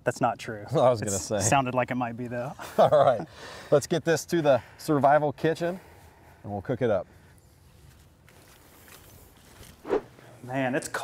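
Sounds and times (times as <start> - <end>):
faint outdoor background noise: 0.0 - 11.0
short loud rushing sound: 9.8 - 10.1.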